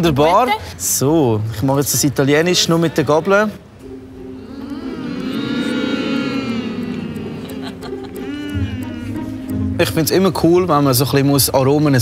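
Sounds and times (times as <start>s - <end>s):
man humming in appreciation: 5.6s - 9.5s.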